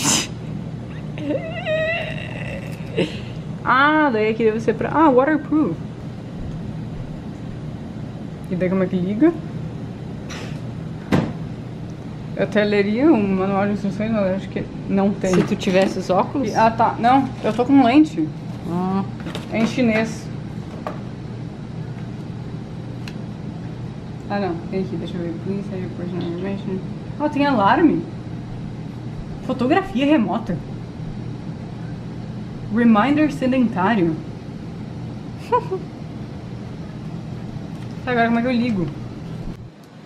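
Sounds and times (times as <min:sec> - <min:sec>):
low room hum: 0:00.0 - 0:40.0.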